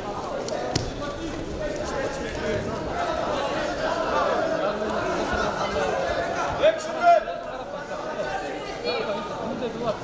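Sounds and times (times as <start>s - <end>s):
indistinct crowd voices: 0.0s - 10.0s.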